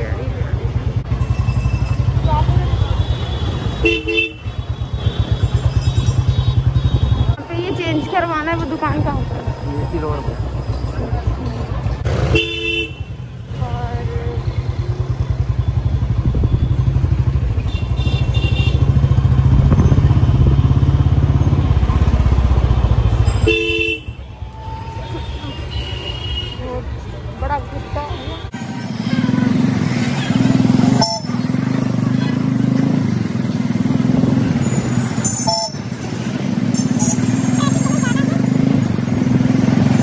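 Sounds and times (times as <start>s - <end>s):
motorcycle engine running: 0.0s - 9.4s, 10.4s - 24.2s, 28.5s - 40.0s
vehicle horn: 3.0s - 5.4s, 12.2s - 13.2s, 17.6s - 19.0s, 23.4s - 24.4s, 25.0s - 26.8s, 30.9s - 31.4s, 35.4s - 35.8s.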